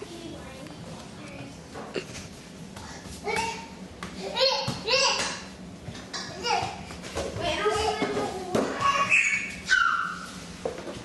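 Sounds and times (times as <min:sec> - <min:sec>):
high-pitched child's voice: 0:07.4 - 0:10.0.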